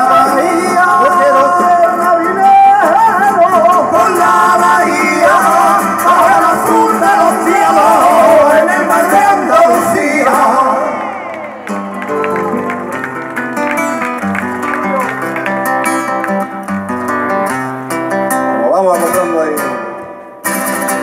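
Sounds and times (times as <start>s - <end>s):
acoustic guitars playing: 0.0s - 21.0s.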